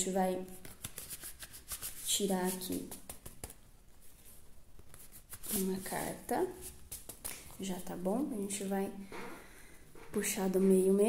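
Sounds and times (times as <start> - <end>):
cards rustling: 0.6 - 7.6.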